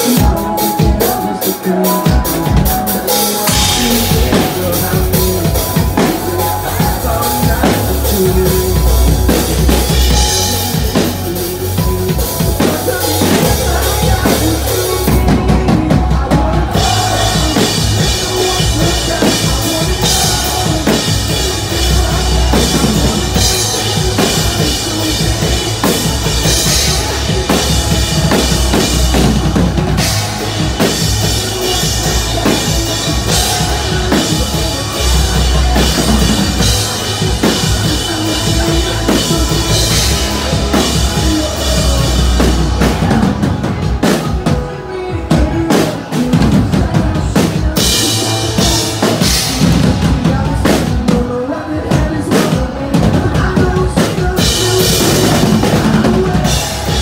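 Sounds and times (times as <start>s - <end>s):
pounding drum kit: 0.0s - 57.0s
rock band playing live: 0.0s - 57.0s.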